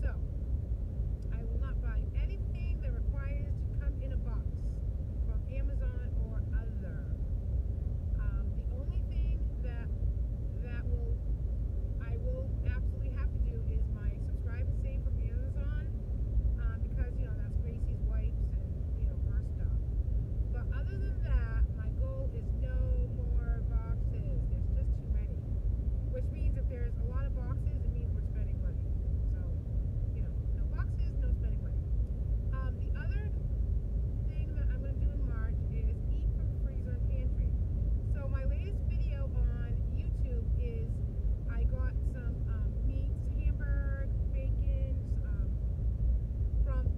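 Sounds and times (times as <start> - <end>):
woman's voice: 0.0 - 0.3, 1.3 - 4.7, 5.3 - 7.2, 8.2 - 9.9, 10.5 - 11.2, 12.0 - 15.9, 16.6 - 19.8, 20.6 - 25.4, 26.1 - 29.6, 30.2 - 31.8, 32.6 - 33.3, 34.3 - 37.5, 38.1 - 45.6, 46.7 - 46.9
car road and engine noise: 0.0 - 46.9.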